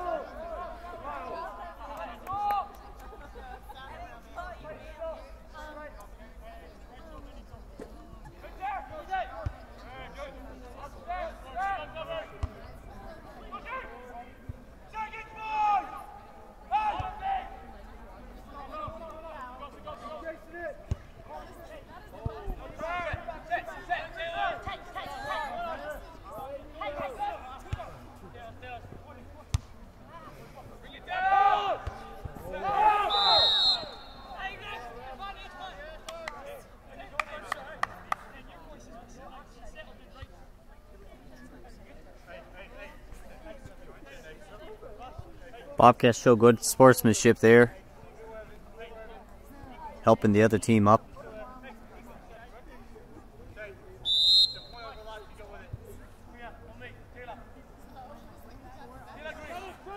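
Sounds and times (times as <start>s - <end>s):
players shouting: 14.9s - 17.7s, 30.9s - 35.9s
referee's whistle: 33.0s - 34.5s, 54.0s - 55.4s.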